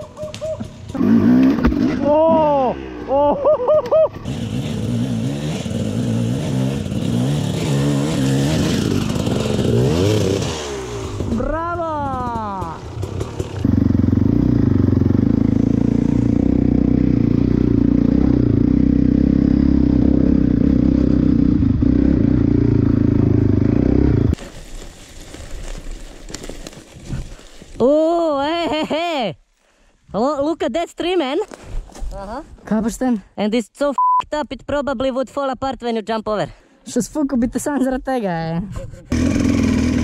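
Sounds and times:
dirt bike engine revving: 0.6 - 3.4, 4.1 - 24.4, 39.1 - 40.0.

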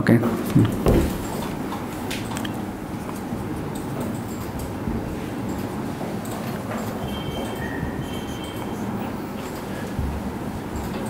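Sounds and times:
marker writing on whiteboard: 0.4 - 11.0
marker squeaks: 6.8 - 9.4.

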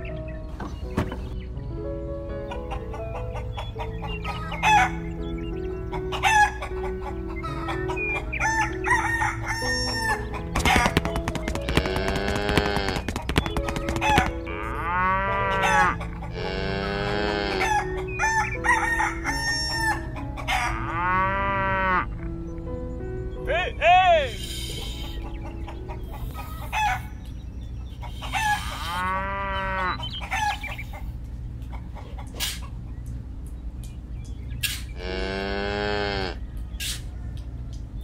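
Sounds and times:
background music: 0.0 - 38.0
hens clucking: 2.4 - 22.6, 24.3 - 33.2
rooster crowing: 8.4 - 10.3, 15.2 - 16.1, 16.8 - 21.2.

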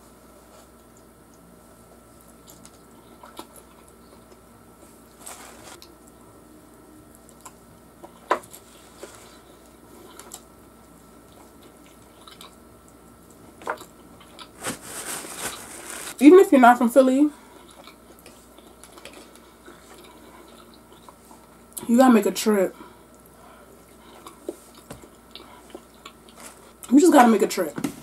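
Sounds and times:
person chewing fried chicken: 2.0 - 4.5, 7.1 - 14.6, 17.4 - 21.7, 23.0 - 26.8.

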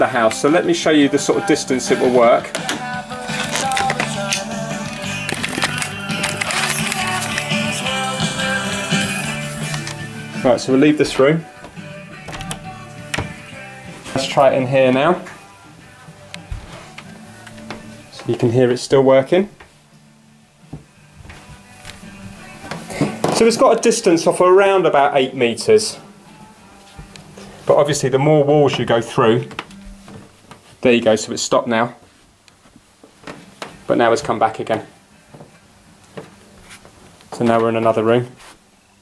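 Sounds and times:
pop music over speakers: 0.0 - 18.9, 20.7 - 29.6.

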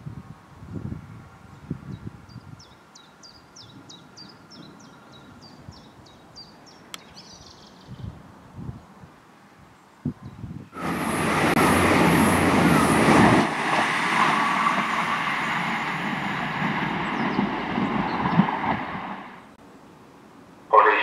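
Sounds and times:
train passing: 10.7 - 19.6.

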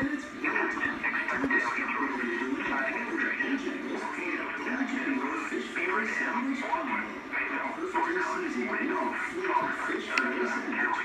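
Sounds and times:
music from laptop speakers: 0.0 - 11.0
voices from laptop speakers: 0.0 - 11.0.

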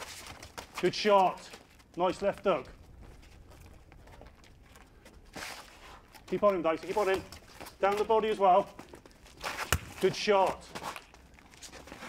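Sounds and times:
shuffling footsteps: 0.0 - 12.0.

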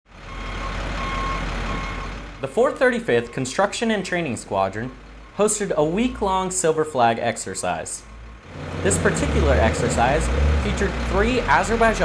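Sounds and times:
diesel engine running: 0.1 - 12.0
reversing alarm beeps: 0.3 - 2.1.

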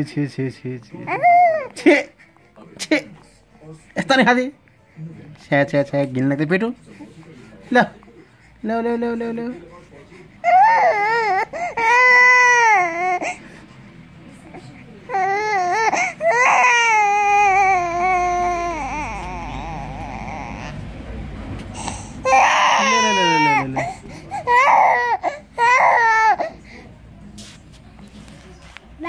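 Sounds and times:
infant crying: 1.0 - 1.8, 10.4 - 13.4, 15.1 - 20.9, 21.8 - 26.6.

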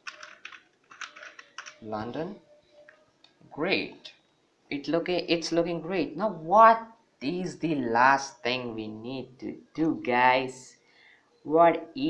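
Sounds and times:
keyboard typing: 0.0 - 1.8
man speaking: 1.8 - 2.4, 3.5 - 10.8, 11.4 - 12.0.

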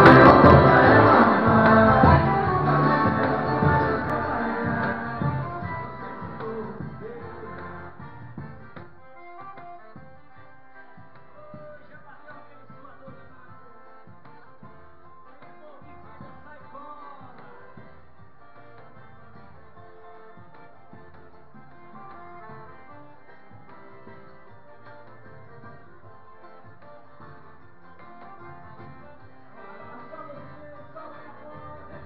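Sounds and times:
drum strokes: 0.0 - 10.4
accordion melody: 0.0 - 32.0
drum beats: 0.0 - 32.0
guitar: 0.0 - 32.0.

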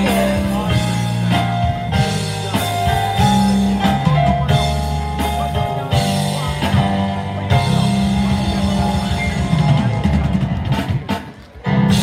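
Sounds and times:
drum kit: 0.0 - 12.0
electronic keyboards: 0.0 - 12.0
live band playing: 0.0 - 12.0.

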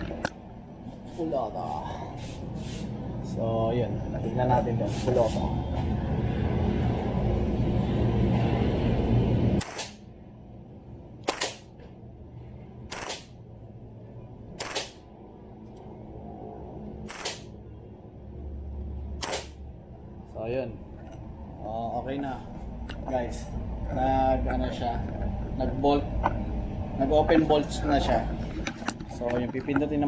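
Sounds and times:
airsoft gun single shots: 9.6 - 10.0, 11.2 - 11.7, 12.9 - 13.3, 14.6 - 15.0, 17.1 - 17.5, 19.2 - 19.6.

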